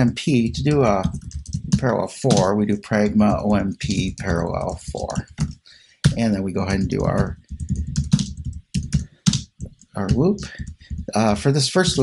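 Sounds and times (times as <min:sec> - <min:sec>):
computer keyboard typing: 0:00.0 - 0:12.0.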